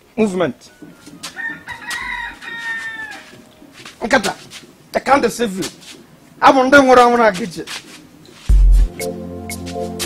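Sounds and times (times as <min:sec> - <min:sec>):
rooster crowing: 0:00.7 - 0:03.5.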